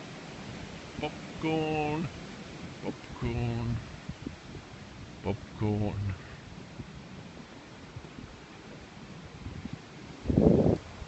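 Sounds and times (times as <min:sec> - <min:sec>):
muffled microphone rumble: 0:03.2 - 0:04.4, 0:05.3 - 0:06.4.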